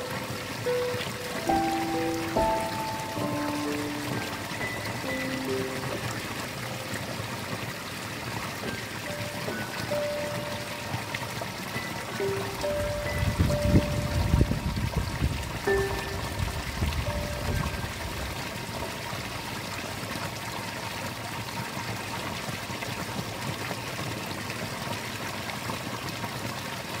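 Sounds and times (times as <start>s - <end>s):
water splashing over a drop: 0.0s - 20.2s.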